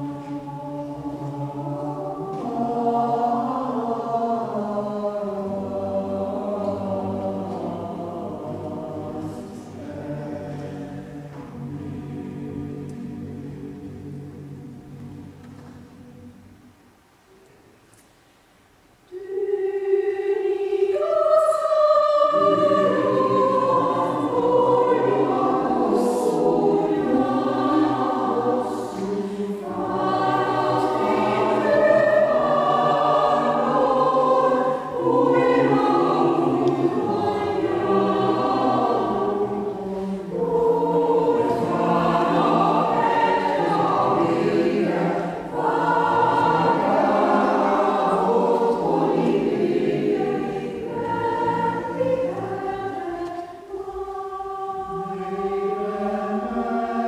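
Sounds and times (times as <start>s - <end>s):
mixed choir singing unaccompanied: 0.0s - 16.7s, 19.1s - 57.0s.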